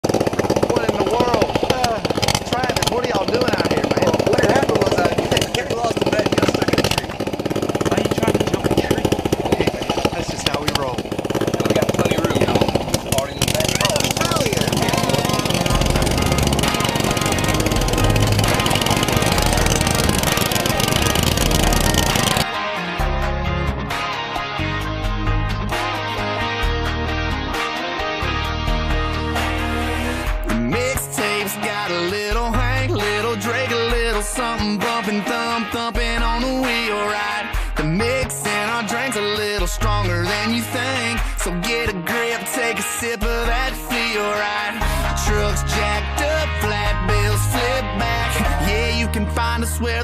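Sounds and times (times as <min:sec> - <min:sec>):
small engine idling: 0:00.0 - 0:22.5
guitar-led country song: 0:00.0 - 0:50.0
person speaking: 0:07.8 - 0:17.8.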